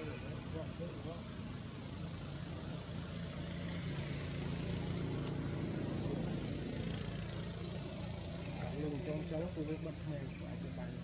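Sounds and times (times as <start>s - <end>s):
outdoor background hiss: 0.0s - 11.0s
vehicle engine running: 0.0s - 11.0s.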